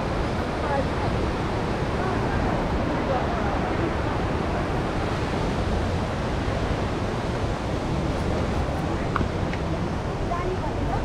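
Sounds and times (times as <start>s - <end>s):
river rushing: 0.0s - 11.0s
wind rumbling on microphone: 0.0s - 11.0s.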